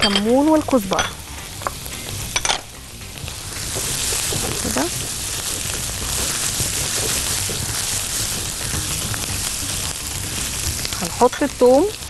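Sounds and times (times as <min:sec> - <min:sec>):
utensil clicking against pan: 0:00.0 - 0:12.0
vegetables sizzling in frying pan: 0:00.0 - 0:12.0.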